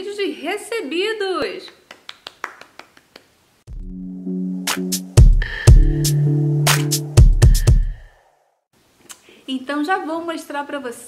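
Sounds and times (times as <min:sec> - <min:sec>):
light hand claps: 0:01.7 - 0:03.3
electronic music with synth and beat: 0:03.7 - 0:08.1.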